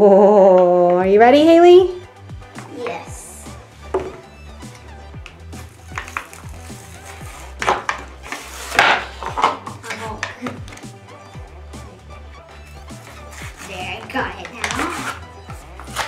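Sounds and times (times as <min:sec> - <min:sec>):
background music with beat: 0:00.6 - 0:16.0.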